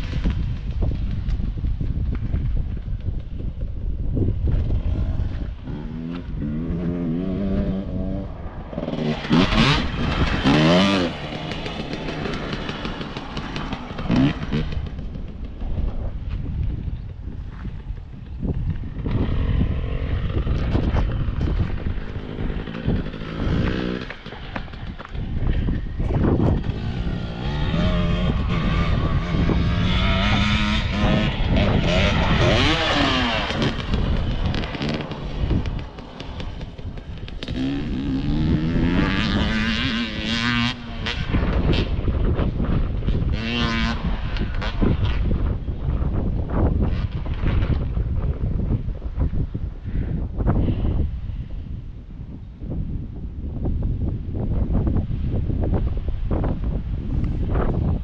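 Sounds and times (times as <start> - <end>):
wind buffeting microphone: 0.0 - 58.0
dirt bike engines revving: 4.2 - 17.2, 17.9 - 47.9.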